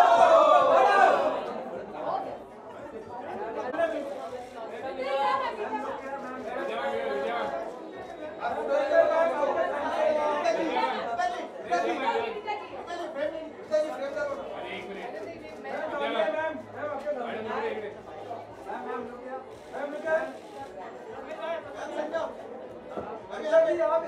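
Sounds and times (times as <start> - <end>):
crowd chattering: 0.0 - 24.0.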